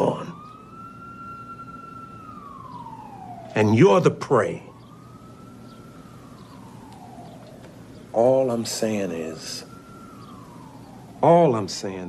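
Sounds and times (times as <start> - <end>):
siren wail: 0.0 - 12.0.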